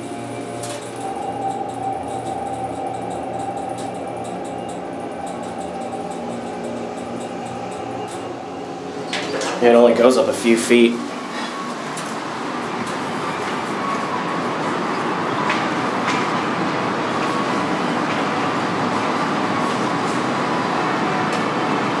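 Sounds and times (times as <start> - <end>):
faint hum: 0.0 - 14.6
steady rushing noise: 0.0 - 22.0.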